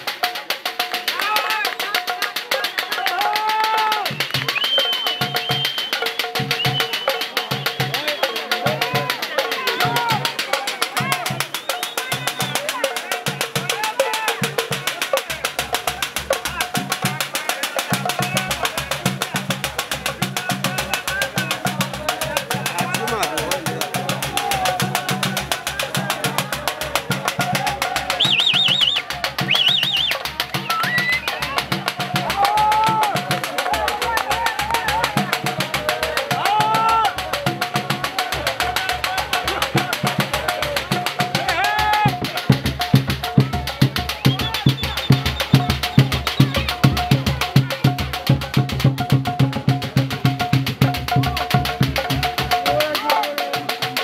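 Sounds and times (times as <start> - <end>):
crowd shouting and singing: 0.0 - 54.0
hand drums fast rhythm: 0.0 - 54.0.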